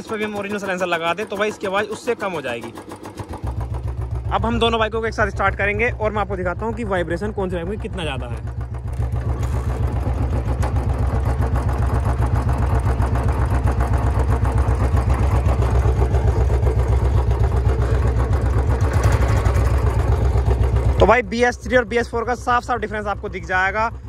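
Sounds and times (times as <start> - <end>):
motorcycle engines idling: 0.0 - 24.0.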